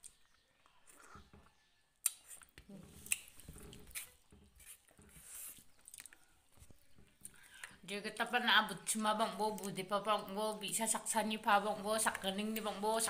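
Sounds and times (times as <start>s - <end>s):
people chewing: 0.0s - 7.8s.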